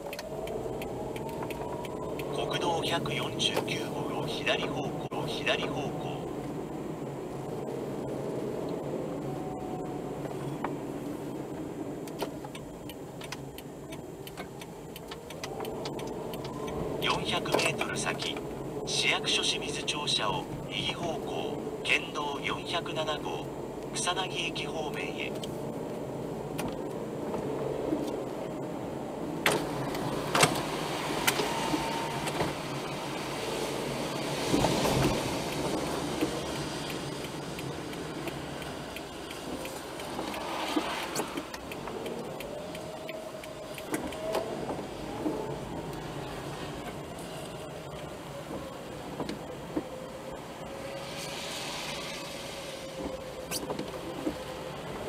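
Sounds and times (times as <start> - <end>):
sharp clicks: 0.0 - 3.8, 12.0 - 18.5
tyre noise on wet road: 0.0 - 55.0.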